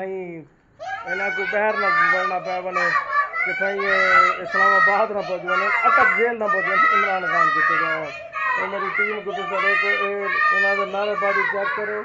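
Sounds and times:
children chanting: 0:00.8 - 0:12.0.

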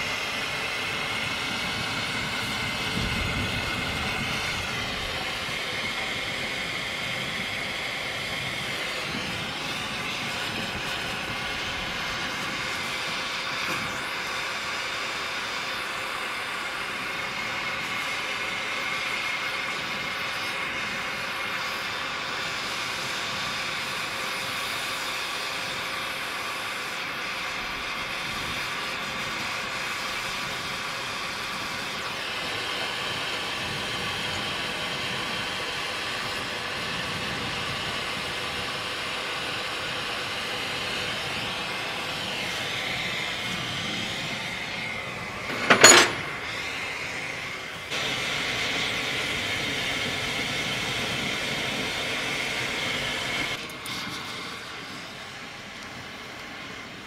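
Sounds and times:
gas torch hissing: 0:00.0 - 0:57.0.

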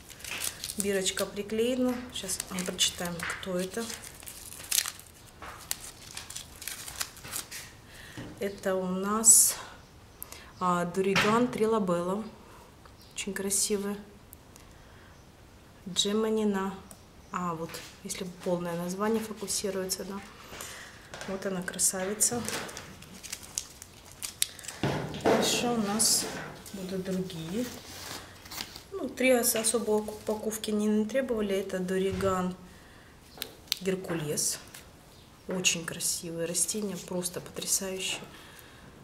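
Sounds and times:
paper wrap rustling and crinkling: 0:00.0 - 0:07.8, 0:21.1 - 0:30.8.

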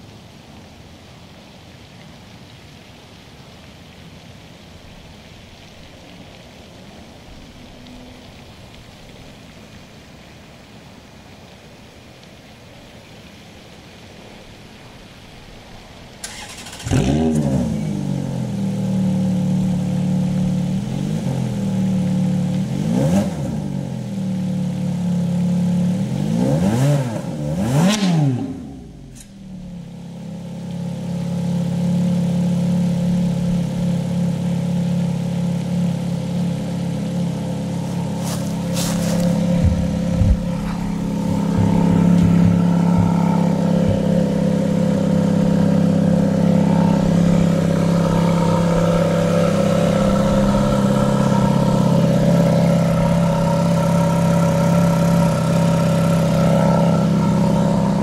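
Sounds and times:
car engine idling: 0:15.4 - 0:26.3, 0:28.6 - 0:58.0
car engine starting: 0:16.0 - 0:58.0
engine throttle blips: 0:16.2 - 0:58.0.

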